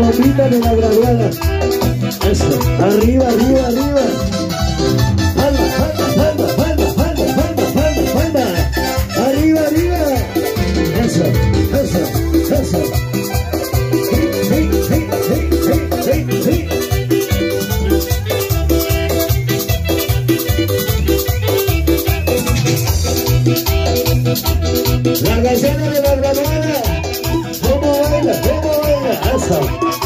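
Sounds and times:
band playing dance music: 0.0 - 30.0.

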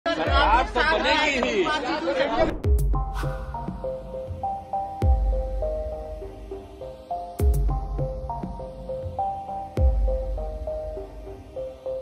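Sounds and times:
people talking over one another: 0.1 - 2.6.

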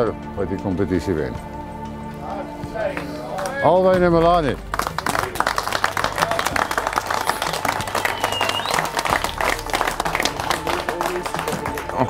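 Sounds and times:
audience clapping: 1.8 - 12.0.

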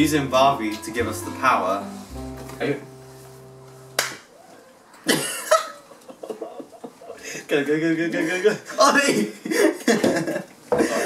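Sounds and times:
background music: 0.0 - 4.3
boy laughing: 5.1 - 7.2.

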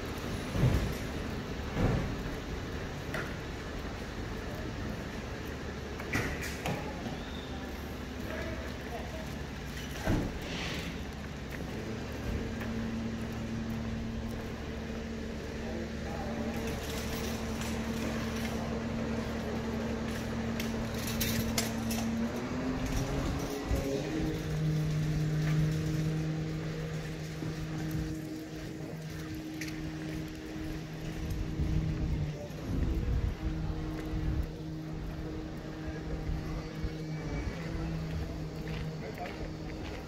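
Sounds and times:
vehicle engine hum: 0.0 - 40.0
light clicks and clatter: 16.3 - 31.5.

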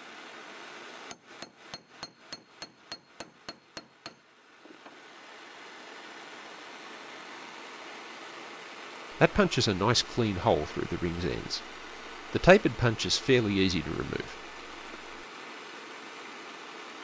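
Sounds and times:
faint steady background noise: 0.0 - 17.0
hammer striking metal punch: 1.1 - 4.3.

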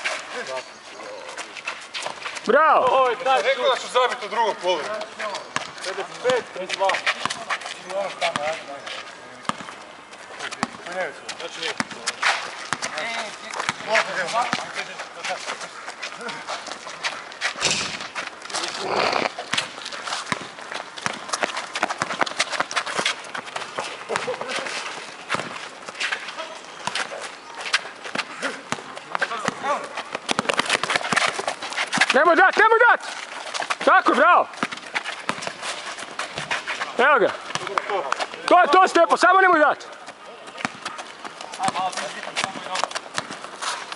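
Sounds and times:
running footsteps on asphalt: 0.0 - 43.9
basketball bouncing: 9.4 - 9.8, 10.6 - 10.9, 11.7 - 13.0, 13.6 - 14.8, 19.1 - 22.7, 25.3 - 25.7, 34.6 - 35.6, 40.6 - 43.5
players calling out: 18.5 - 20.4.

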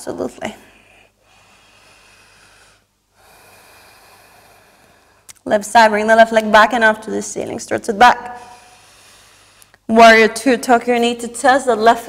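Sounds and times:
woman breathing: 0.6 - 5.3, 8.4 - 9.9.

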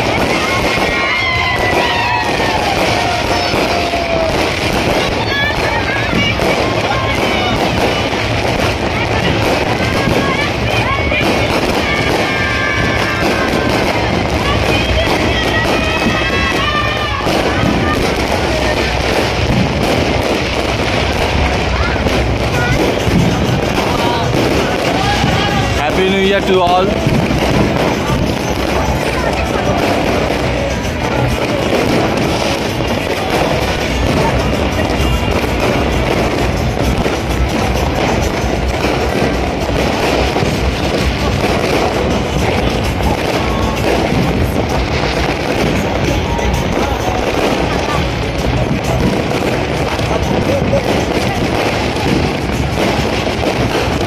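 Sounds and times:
fireworks bursting and crackling: 0.0 - 54.0
music: 0.0 - 54.0
people's voices: 0.0 - 54.0.

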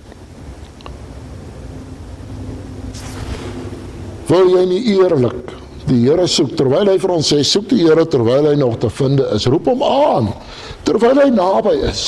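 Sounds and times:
faint steady hum: 0.0 - 12.0
low rumble: 1.1 - 4.8.

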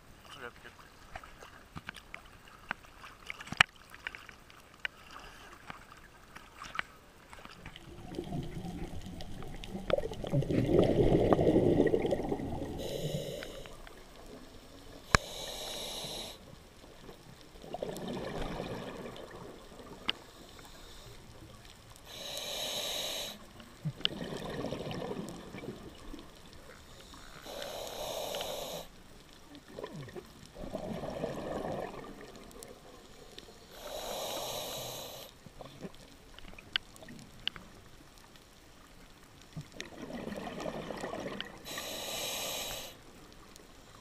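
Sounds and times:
exhaled bubbles gurgling: 7.5 - 28.9, 29.5 - 37.3, 39.6 - 43.0
burbling exhaust bubbles: 7.8 - 12.8, 23.8 - 25.9, 29.7 - 32.4
hissing regulator inhalations: 11.8 - 14.0, 15.0 - 16.5, 22.0 - 23.6, 26.7 - 29.0, 33.4 - 35.4, 41.6 - 43.0.

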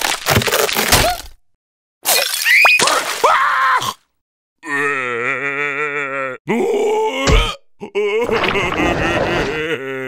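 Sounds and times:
cartoon voice groaning: 4.6 - 10.0.

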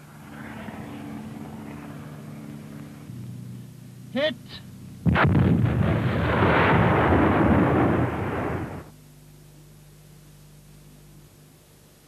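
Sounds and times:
vehicle engine hum: 0.0 - 5.8
missile rushing hiss: 5.1 - 8.9.

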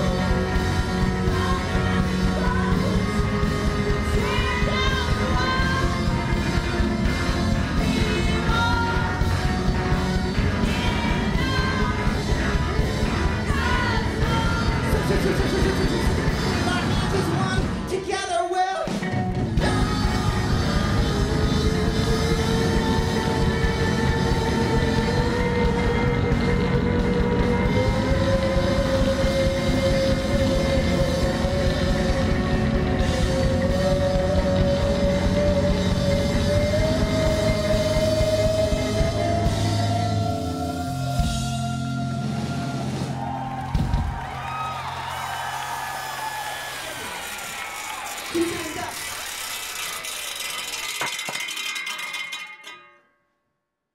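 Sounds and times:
live rock band: 0.0 - 49.1
rattling music-like sting: 46.6 - 52.4
ringing tail: 47.7 - 53.2.

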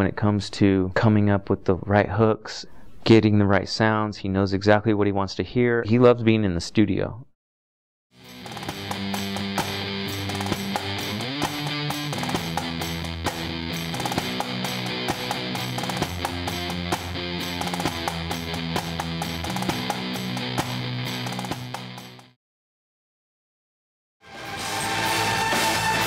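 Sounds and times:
drums with cymbal hits: 8.2 - 22.0
distorted electric guitar riffing: 8.2 - 22.3.

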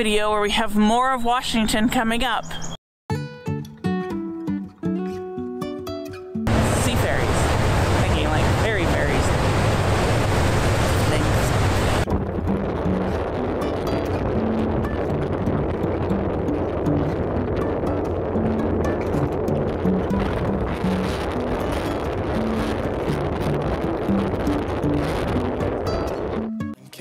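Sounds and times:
rush of wake water: 6.5 - 12.1, 14.8 - 26.2
wind buffeting microphone: 6.5 - 26.7.

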